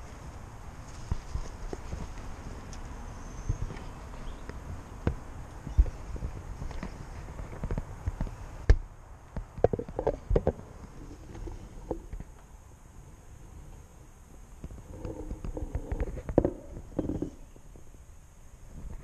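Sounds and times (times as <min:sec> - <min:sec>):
wind rumble on microphone: 0:00.0 - 0:12.3, 0:13.3 - 0:19.0.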